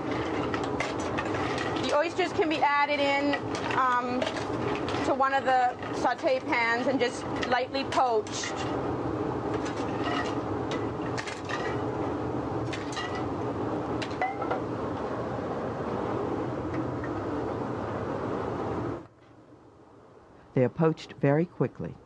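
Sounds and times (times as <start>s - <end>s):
stove rushing noise: 0.0s - 19.1s.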